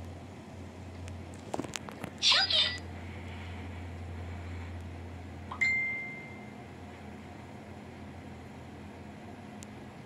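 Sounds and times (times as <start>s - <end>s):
steady low hum: 0.0s - 10.0s
ringing ding: 5.5s - 6.5s.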